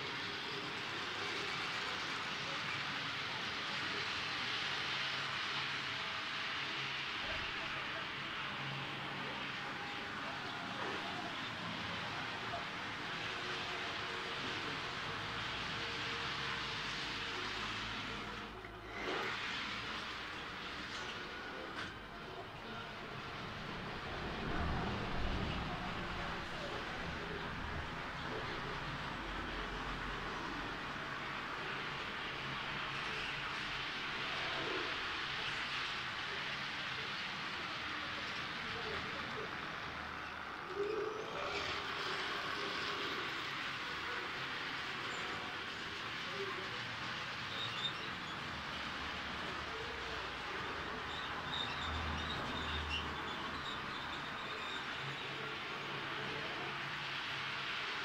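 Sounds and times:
model trains running on track: 0.0s - 58.0s.

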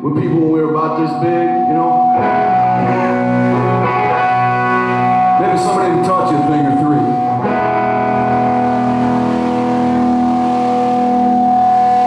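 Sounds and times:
electric guitar sustained chord: 1.3s - 12.0s.

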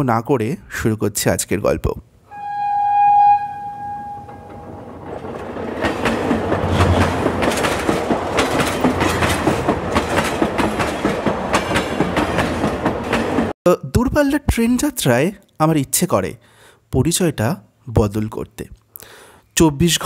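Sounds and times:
train horn: 2.3s - 4.9s
train rumbling on rails: 3.6s - 13.5s
wheels clattering over rail joints: 4.2s - 13.5s.

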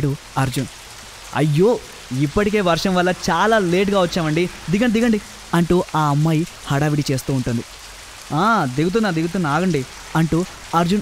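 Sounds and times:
narrator speaking: 0.0s - 0.7s, 1.3s - 7.7s, 8.3s - 11.0s
steady background hiss: 0.0s - 11.0s.

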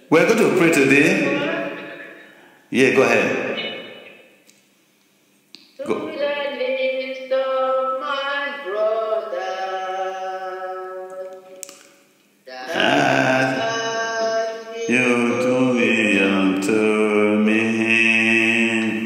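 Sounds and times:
voices singing worship song: 0.0s - 4.2s, 5.8s - 11.6s, 12.5s - 19.0s.

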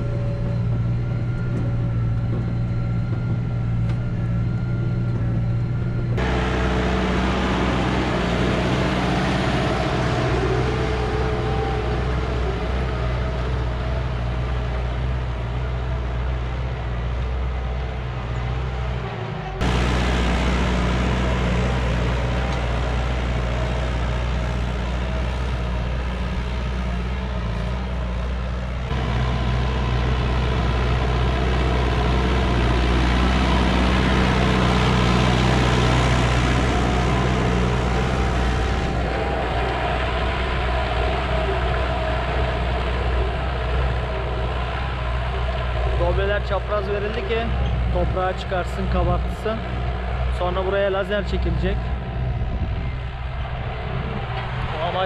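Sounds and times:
tractor engine under load: 0.0s - 55.0s.

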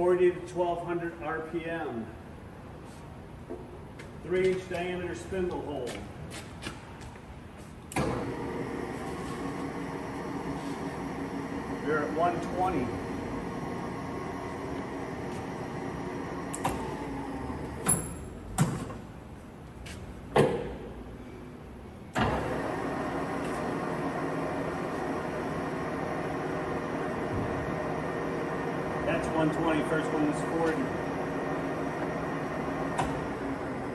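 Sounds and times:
lathe running: 8.1s - 17.9s, 22.2s - 33.9s.

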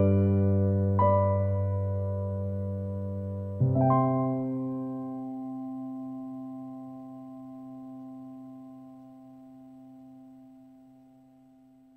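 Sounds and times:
piano chord ringing: 0.0s - 10.9s.

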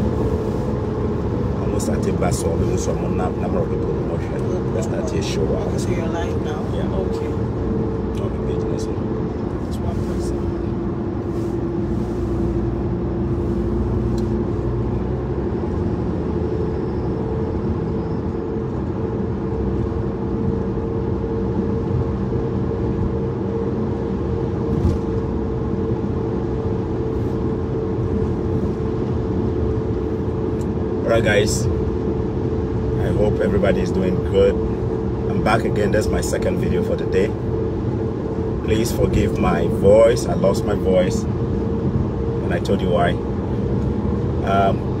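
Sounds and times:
car cabin road noise: 0.0s - 45.0s.

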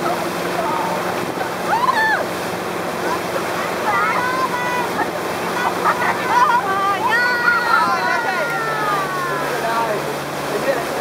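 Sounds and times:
boat engine humming: 0.0s - 11.0s
water rushing: 0.0s - 11.0s.

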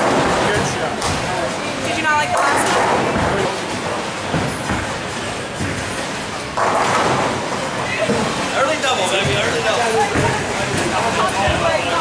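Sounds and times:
bowling pins crashing: 2.4s - 8.5s
bowling ball rolling: 2.4s - 12.0s.

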